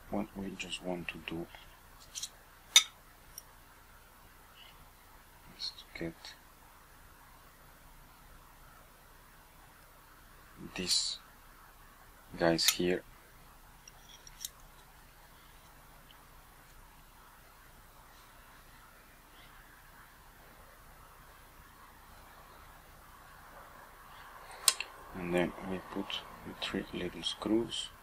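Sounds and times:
metal lens parts clicking: 13.9s - 14.8s.

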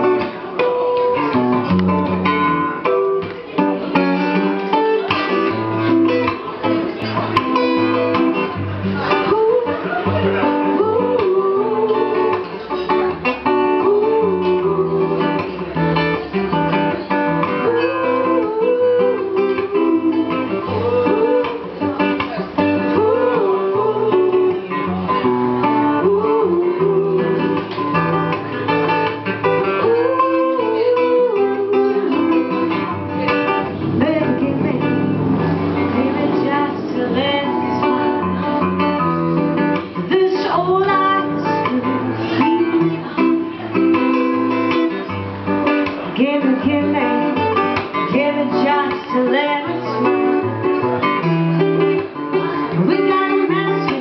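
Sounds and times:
acoustic guitar strumming: 0.0s - 54.0s
reggae music: 0.0s - 54.0s
repeating bass line: 32.6s - 38.5s.

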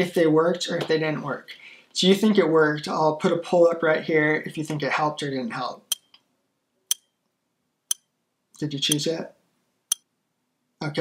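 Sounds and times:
clock ticking: 8.9s - 9.1s.

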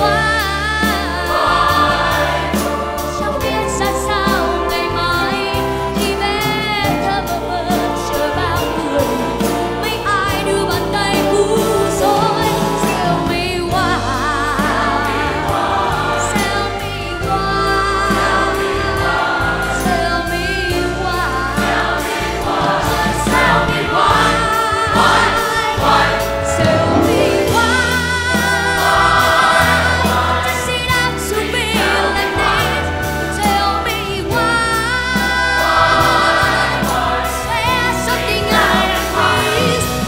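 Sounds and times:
large choir singing: 0.0s - 40.0s
live band and orchestra: 0.0s - 40.0s.

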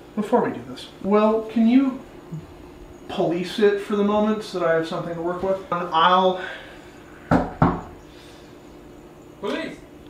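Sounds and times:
knocks on a door: 7.3s - 8.0s.

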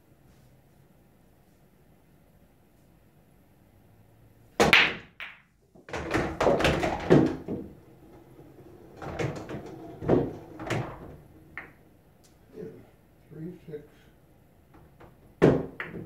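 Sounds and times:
cue ball cracking into rack: 4.6s - 11.8s, 14.7s - 16.0s
pool balls clacking: 4.6s - 12.0s, 14.6s - 16.0s.

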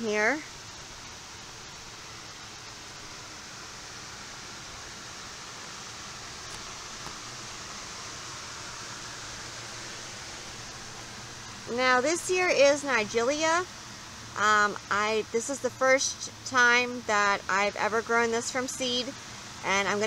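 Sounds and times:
ventilation fan running: 0.0s - 20.0s.

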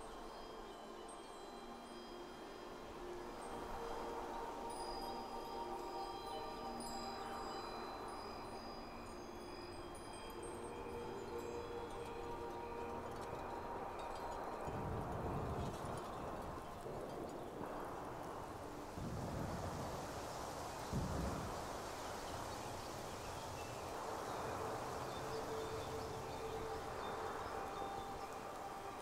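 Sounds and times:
wind chimes ringing: 0.0s - 29.0s
wind hush: 0.0s - 29.0s.

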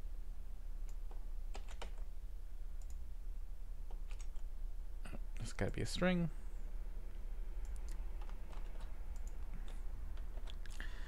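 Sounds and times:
steady low hum: 0.0s - 11.0s
keyboard and mouse clicks: 0.8s - 2.1s, 2.8s - 3.0s, 3.9s - 4.5s, 7.6s - 10.8s.

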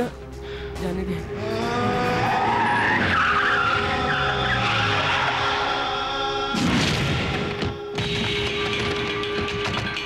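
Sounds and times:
car tyres screeching: 1.8s - 6.2s.

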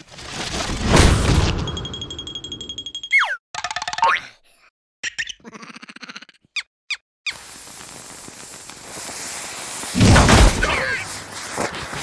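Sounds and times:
high ringing tone: 1.6s - 3.3s
squeaky cartoon creature voices: 5.0s - 6.7s
firework fuse fizzing: 7.3s - 12.0s.

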